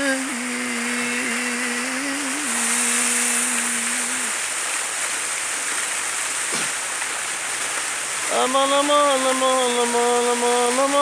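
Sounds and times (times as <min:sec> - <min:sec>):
man singing long chant note: 0:00.0 - 0:04.3, 0:08.3 - 0:11.0
running water hiss: 0:00.0 - 0:11.0.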